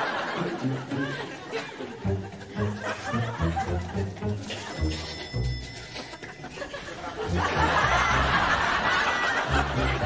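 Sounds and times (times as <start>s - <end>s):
studio audience laughing: 0.0s - 4.7s, 6.2s - 10.0s.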